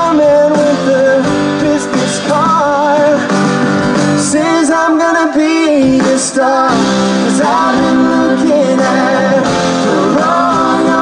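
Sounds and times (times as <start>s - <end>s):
live pop-rock band: 0.0s - 11.0s
person singing: 0.0s - 11.0s
upright piano: 0.0s - 11.0s.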